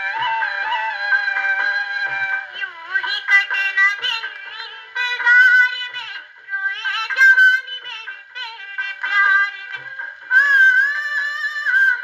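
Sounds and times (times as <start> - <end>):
gramophone playing film song: 0.0 - 12.0.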